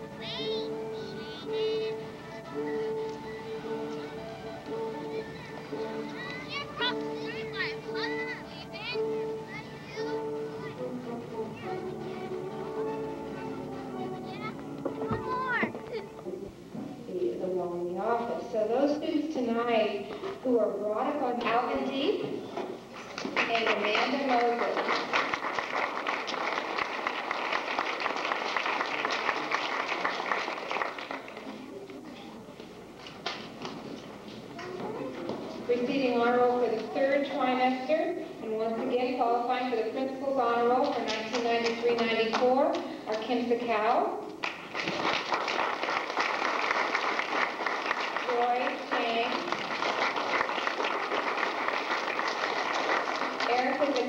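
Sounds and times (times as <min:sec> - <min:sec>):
audience applauding: 0:23.0 - 0:31.8, 0:44.4 - 0:54.0
woman's voice: 0:48.3 - 0:49.5, 0:53.4 - 0:54.0.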